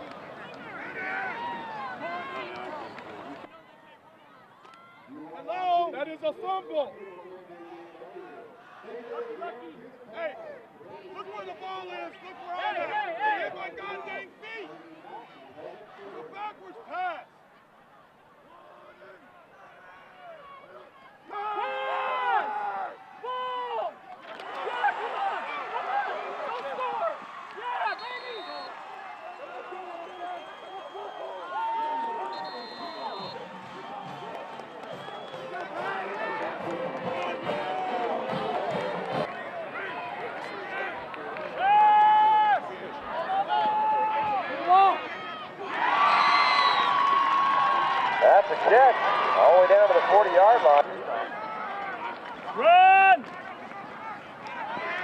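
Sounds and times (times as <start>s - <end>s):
crowd shouting: 18.8s - 55.0s.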